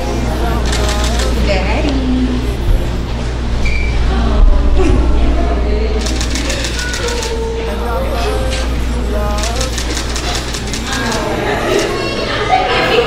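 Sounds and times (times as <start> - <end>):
steady low hum: 0.0 - 12.9
indistinct voices: 0.0 - 13.0
rapid clicks: 9.3 - 11.9.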